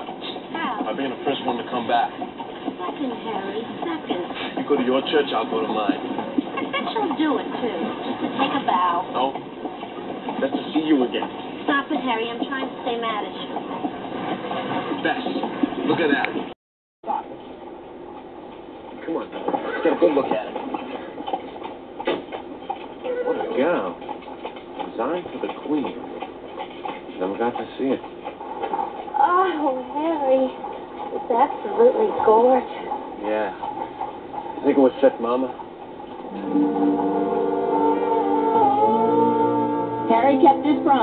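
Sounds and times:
sustained musical chord: 36.3s - 41.0s
voices with wavering pitch: 36.3s - 41.0s.

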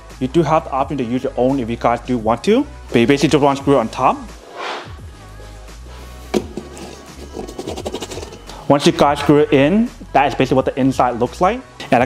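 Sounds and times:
soft background music: 0.0s - 12.0s
knock: 6.3s - 6.7s.

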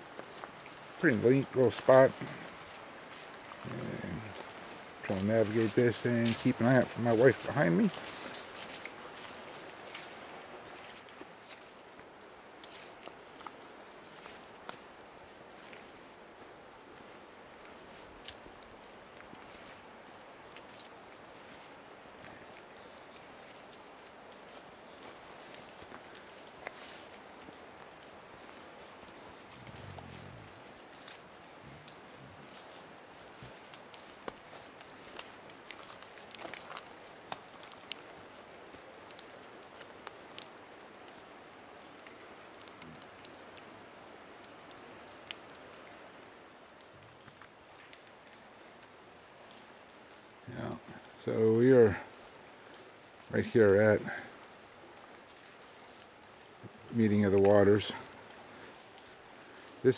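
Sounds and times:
footsteps on rocky trail: 0.0s - 12.0s, 19.2s - 39.2s.

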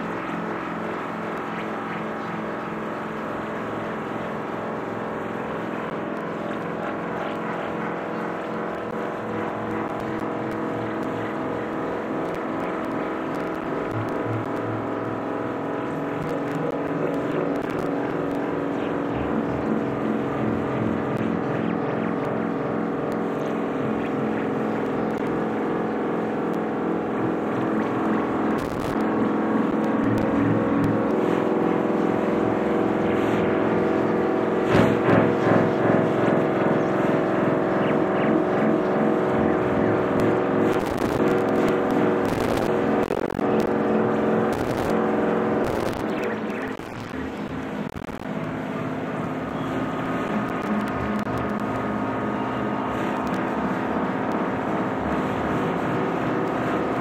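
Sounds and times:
low fluttering rumble: 0.0s - 57.0s
synthesizer drone: 0.0s - 57.0s.

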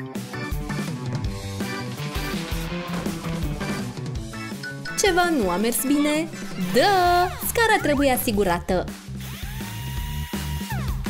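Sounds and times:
background music with steady beat: 0.0s - 11.0s
cordless drill motor whine: 9.3s - 10.7s.

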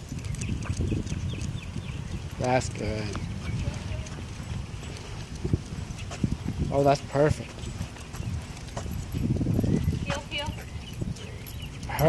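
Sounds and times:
footsteps on asphalt: 0.0s - 12.0s
steady low rumble: 0.0s - 12.0s.

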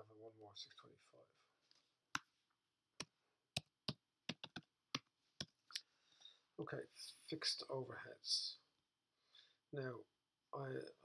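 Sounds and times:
computer keyboard typing: 3.0s - 5.6s.

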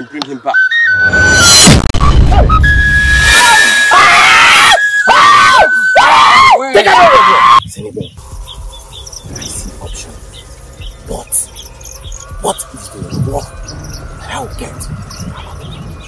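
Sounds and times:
trailer music: 0.6s - 3.9s, 8.2s - 16.0s
drawn-out shouted cries: 3.7s - 7.6s.

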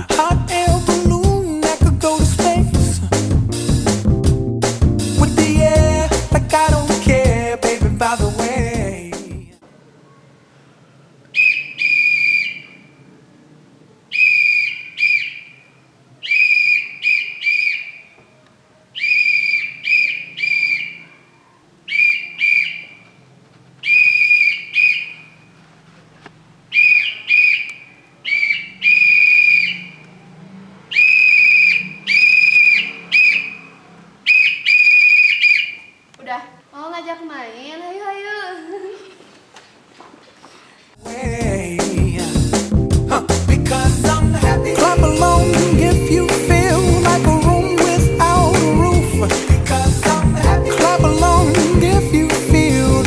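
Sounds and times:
whistle blasts: 11.4s - 12.8s, 14.1s - 15.5s, 16.2s - 18.1s, 19.0s - 21.2s, 21.9s - 23.0s, 26.8s - 30.0s, 30.9s - 33.7s, 34.3s - 36.0s.

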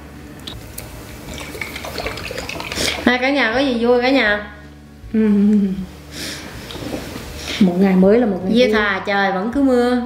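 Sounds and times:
sauce spluttering from squeeze bottle: 1.3s - 3.1s.

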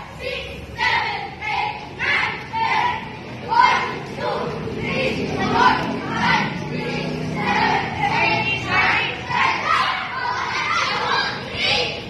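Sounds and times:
children shouting together: 0.0s - 12.0s.

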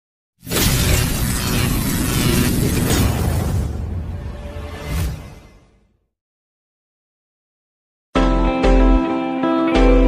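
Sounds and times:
loud noisy crash burst: 0.4s - 4.4s.

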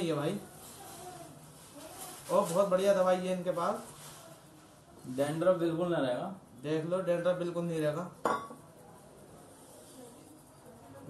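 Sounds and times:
metal bowl clinking: 8.2s - 8.6s.

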